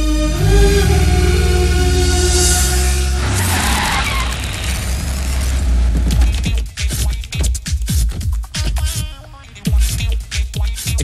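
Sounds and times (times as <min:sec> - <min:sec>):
electronic background music: 0:00.0 - 0:04.4
loud rushing noise: 0:00.4 - 0:06.3.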